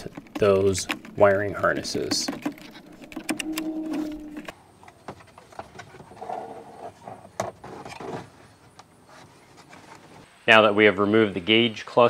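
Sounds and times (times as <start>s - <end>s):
plastic clicks and rattles: 0.0s - 3.6s
low hum: 1.2s - 4.5s.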